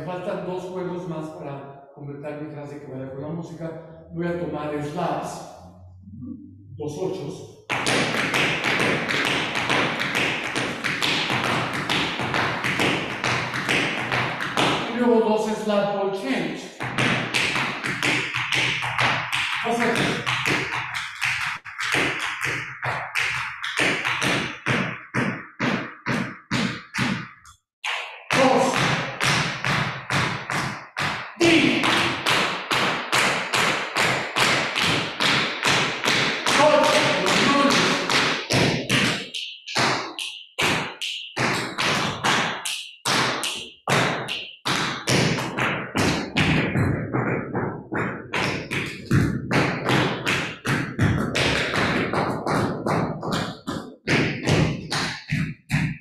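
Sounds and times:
dance shoes tapping on hard floor: 7.7 - 15.0, 16.8 - 56.0.

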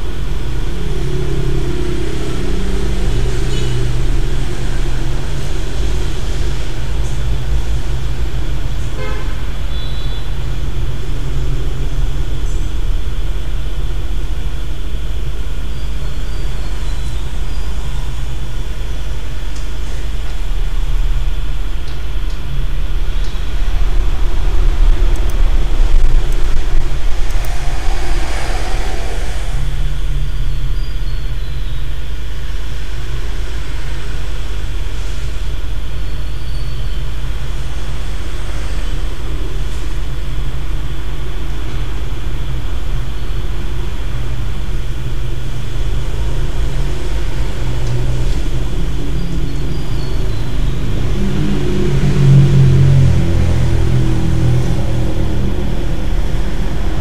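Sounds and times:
steady low rumble: 0.0 - 9.7, 10.3 - 36.4, 37.0 - 57.0.

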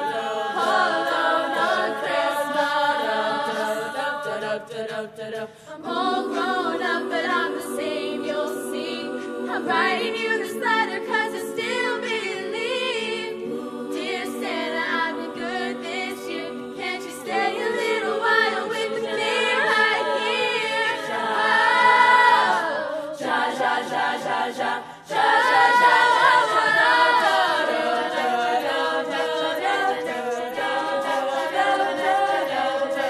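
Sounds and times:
girls singing a cappella in harmony: 0.0 - 33.0.

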